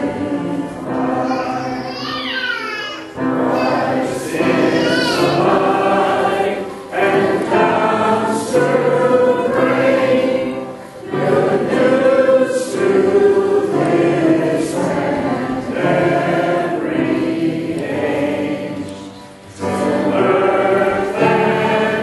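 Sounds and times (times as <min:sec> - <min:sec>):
choir singing sacred song: 0:00.0 - 0:02.3, 0:03.2 - 0:22.0.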